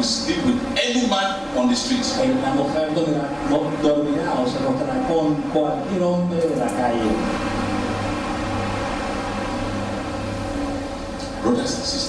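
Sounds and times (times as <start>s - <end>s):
noisy background: 0.0s - 12.0s
steady low hum: 0.0s - 12.0s.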